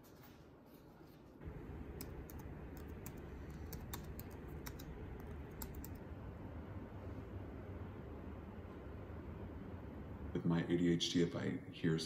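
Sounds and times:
room hum: 0.0 - 12.0
laptop keyboard typing: 1.9 - 6.0.

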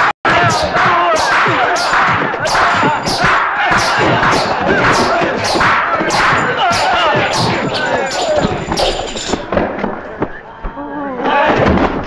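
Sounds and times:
men shouting and crying out: 0.0 - 9.5
sharp hit sounds: 0.3 - 9.6.

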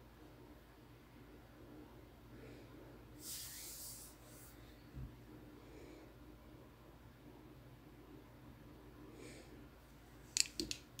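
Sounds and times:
small sharp clicks: 10.3 - 11.0.

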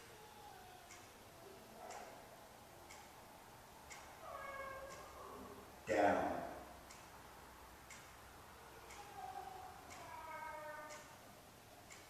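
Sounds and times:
wall clock ticking: 0.8 - 12.0.

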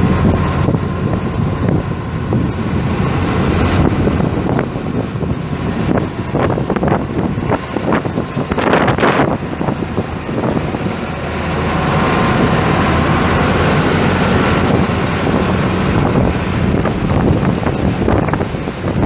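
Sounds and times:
diesel engine running: 0.0 - 19.0
engine whine: 0.0 - 19.0
wind on microphone: 0.0 - 19.0.

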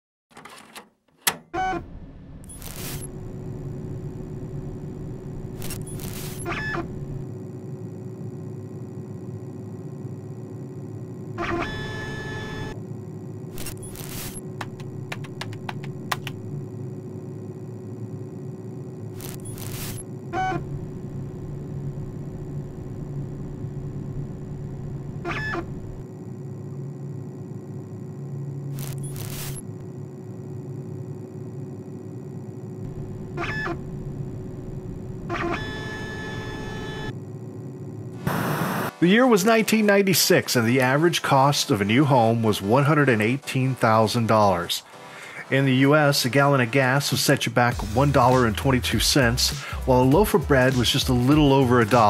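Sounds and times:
bursts of static: 2.4 - 52.0
steady electrical hum: 2.4 - 52.0.

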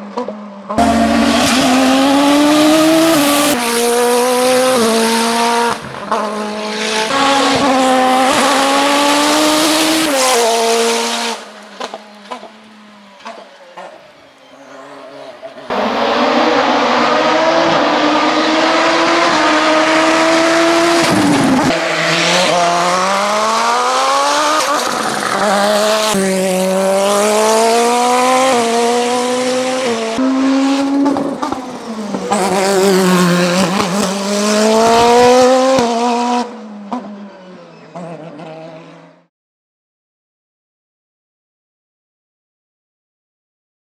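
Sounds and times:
turbocharged engine accelerating: 0.7 - 13.9, 15.1 - 39.3.

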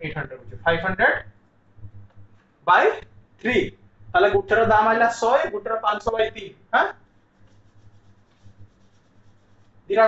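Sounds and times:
man speaking: 0.0 - 1.2, 2.7 - 6.9
marker scratching on whiteboard: 6.9 - 10.0.

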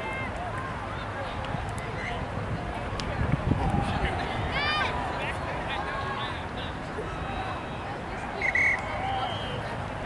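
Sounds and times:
faint distant voices: 0.0 - 10.0
shrill pea whistle blast: 8.4 - 9.6.

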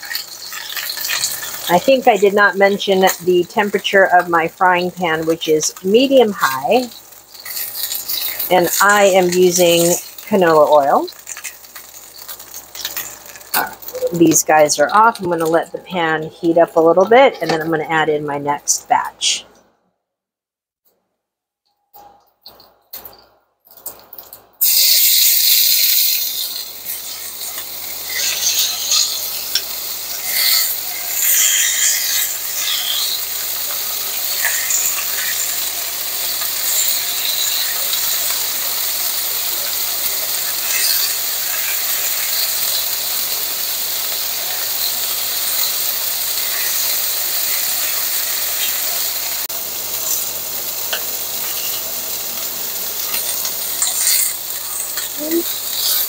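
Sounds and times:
oil crackling: 0.0 - 15.9, 22.4 - 56.0
chicken sizzling in frying pan: 0.0 - 17.2, 23.8 - 56.0.

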